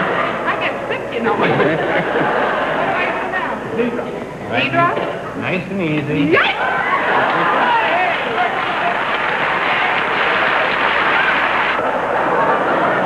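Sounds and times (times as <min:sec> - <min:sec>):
audience laughing and applauding: 0:01.4 - 0:03.2, 0:06.6 - 0:13.0.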